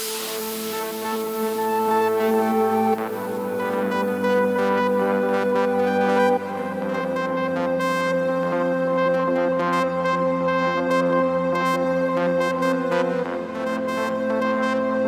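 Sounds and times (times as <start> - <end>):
sustained synthesizer chords: 0.0 - 15.0.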